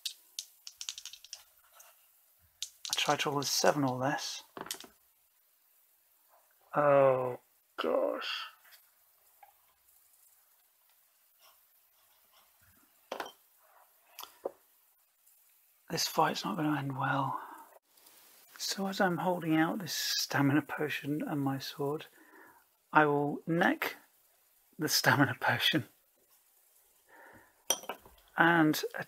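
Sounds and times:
small hard objects clinking: 0.0 - 1.6, 2.6 - 4.0.

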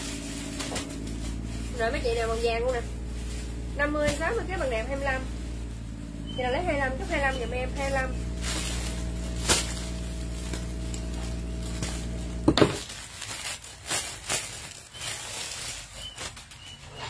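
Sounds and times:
steady hum: 0.0 - 12.9
plastic bag crinkling: 0.0 - 17.0
sharp crackle: 0.0 - 17.0.

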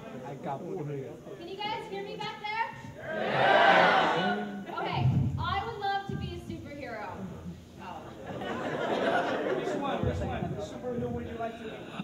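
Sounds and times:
audience chatter: 0.0 - 6.5, 7.8 - 12.0.

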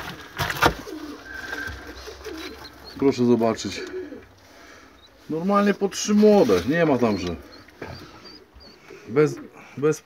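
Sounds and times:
pigeons cooing: 0.3 - 10.0.

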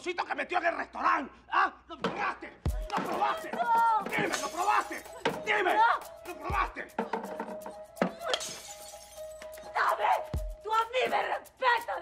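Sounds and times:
crashing shattering noise: 4.2 - 5.0.

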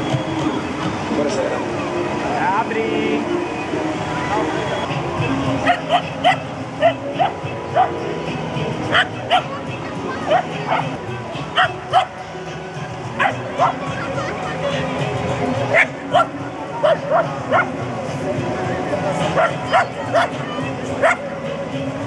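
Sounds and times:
small dog barking: 5.6 - 7.9, 8.9 - 9.5, 10.3 - 10.9, 11.6 - 12.1, 15.7 - 17.7, 19.4 - 20.4, 21.0 - 21.2.

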